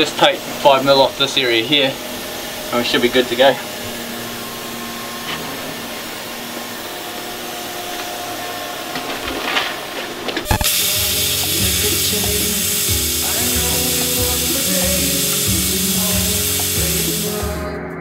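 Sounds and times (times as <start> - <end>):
steady mechanical drone: 0.0 - 17.7
plasma cutter hissing: 10.5 - 17.6
background music: 10.6 - 18.0.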